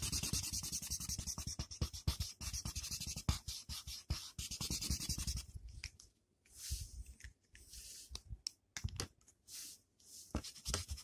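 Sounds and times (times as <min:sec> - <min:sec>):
colored pencil scratching on paper: 0:00.0 - 0:05.5, 0:09.5 - 0:11.0.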